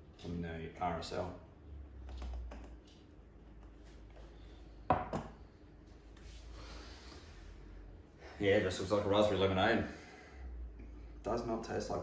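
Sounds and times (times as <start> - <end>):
glass knocking on wooden board: 4.9 - 5.3.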